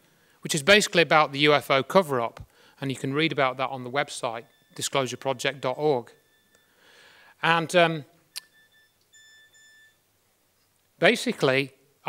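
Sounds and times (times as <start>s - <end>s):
faint high-pitched tone: 3.2s - 10.7s.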